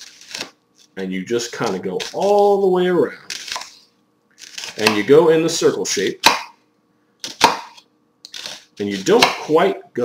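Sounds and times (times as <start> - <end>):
knife slicing through onion: 4.4 - 5.0, 7.2 - 9.6.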